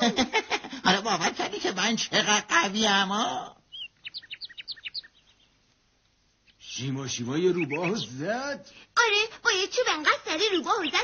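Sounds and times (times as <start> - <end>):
high bird chirps: 3.7 - 5.6, 6.4 - 8.2, 10.5 - 11.0.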